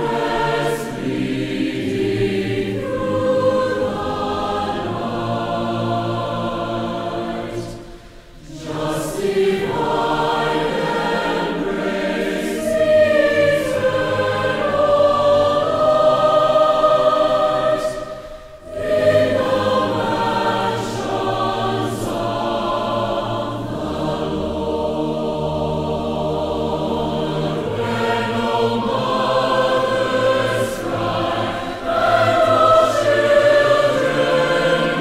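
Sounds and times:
choir singing long held notes: 0.0 - 35.0
singers breathing: 7.7 - 8.6, 17.9 - 18.7, 31.4 - 32.2.

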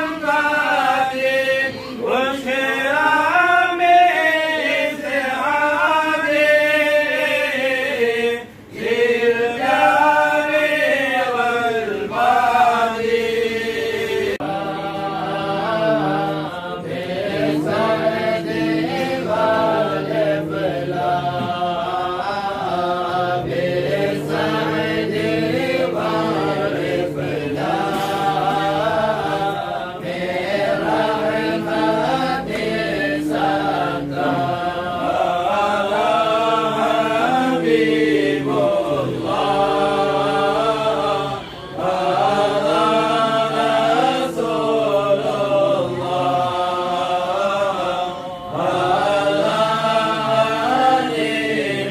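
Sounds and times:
men chanting in unison: 0.0 - 51.9.

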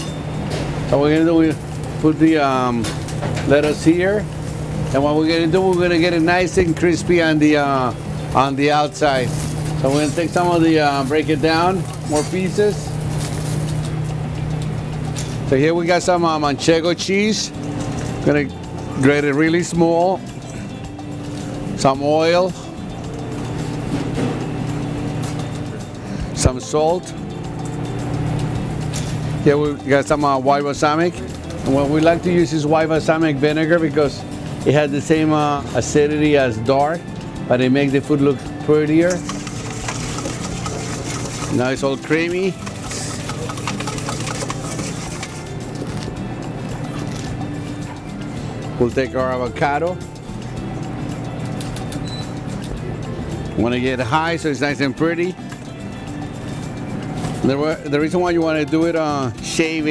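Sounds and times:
kitchen equipment hum: 0.0 - 59.6
whisk scraping metal bowl: 38.9 - 45.9.

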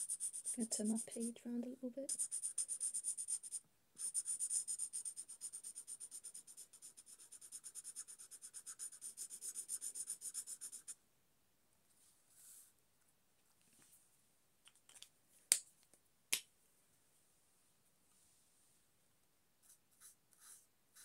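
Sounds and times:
marker pen scrubbing on paper: 0.0 - 1.4, 2.1 - 11.0, 19.6 - 21.0.

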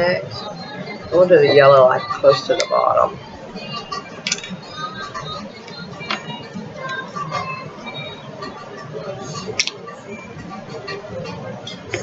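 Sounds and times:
background music: 0.0 - 12.0
faint voices: 0.0 - 12.0.

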